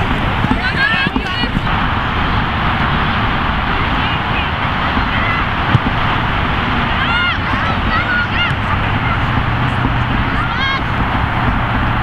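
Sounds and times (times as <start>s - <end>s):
road traffic: 0.0s - 12.0s
wind: 0.0s - 12.0s
sharp thud: 5.7s - 6.3s
high-pitched shouts: 6.9s - 9.3s, 10.2s - 10.9s.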